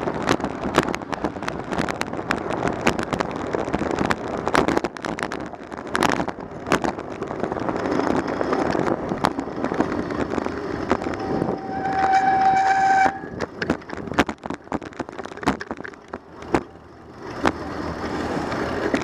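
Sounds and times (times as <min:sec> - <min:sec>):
bicycle rattles and knocks: 0:00.0 - 0:19.0
wind and bicycle road noise: 0:00.0 - 0:19.0.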